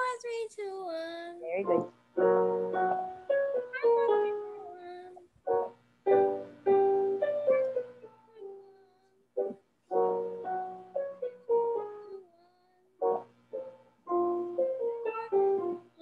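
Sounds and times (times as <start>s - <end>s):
piano descending scale: 1.6s - 4.8s, 5.5s - 8.6s, 9.4s - 12.2s, 13.0s - 16.0s
person singing: 15.0s - 16.0s.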